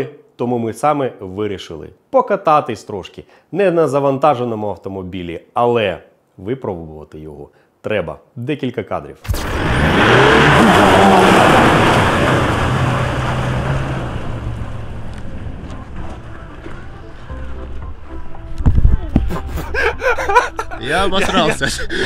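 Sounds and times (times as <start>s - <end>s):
truck driving past on dirt: 9.3s - 18.5s.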